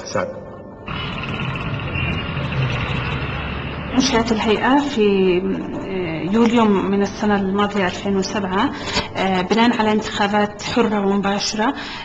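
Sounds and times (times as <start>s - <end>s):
vehicle traffic noise: 0.8s - 7.2s
low engine hum: 0.9s - 5.8s.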